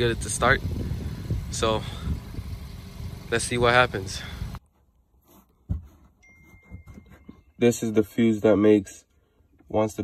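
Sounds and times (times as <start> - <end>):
thin high tone: 6.2 - 8.2.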